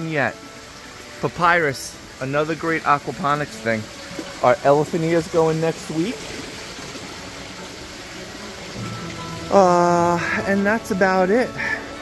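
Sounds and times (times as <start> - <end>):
running water from waterfall: 0.0 - 12.0.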